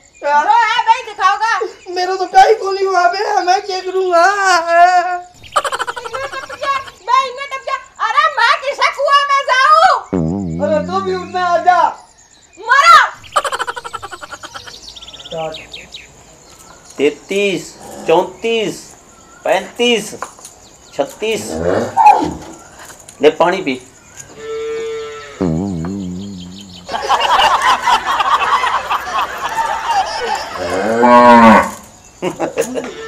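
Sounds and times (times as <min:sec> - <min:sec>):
small birds chirping: 0:05.2 - 0:32.8
rapid chattering: 0:13.2 - 0:14.8
brief voice sound: 0:25.4 - 0:26.9
cow mooing: 0:30.6 - 0:31.8.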